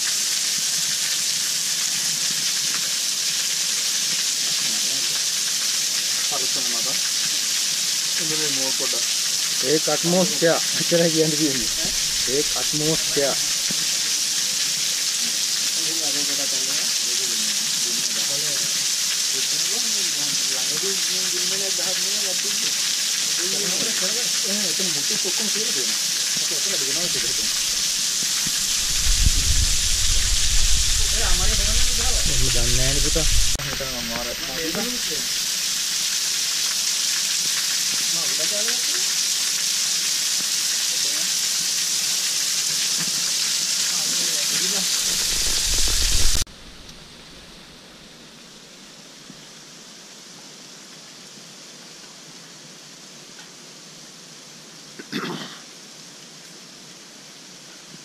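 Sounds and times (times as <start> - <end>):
waterfall hiss: 0.0 - 58.0
low rumble: 27.5 - 33.6.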